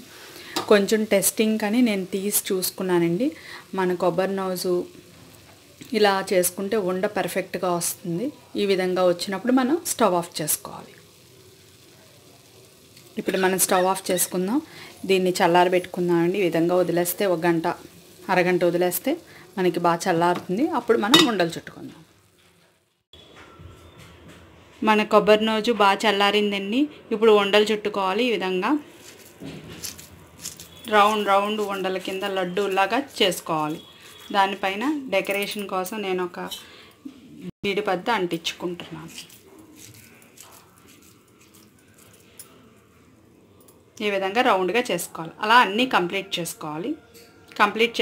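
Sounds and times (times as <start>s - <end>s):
woman talking: 13.2s - 22.0s, 24.8s - 28.8s, 30.9s - 36.6s, 37.4s - 39.2s, 44.0s - 48.0s
hands squeezing moist mixture: 39.1s - 42.4s.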